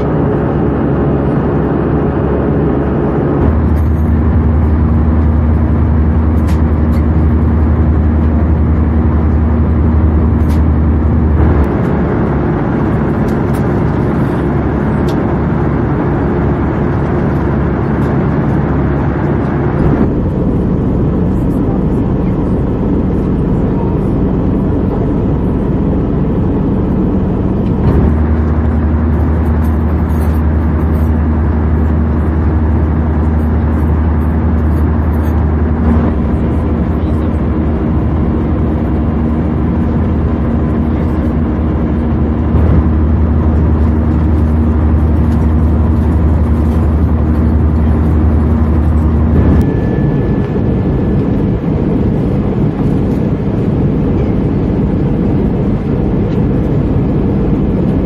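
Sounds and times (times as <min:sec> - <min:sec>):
airplane cabin noise: 0:00.0 - 0:58.0
low hum: 0:00.0 - 0:58.0.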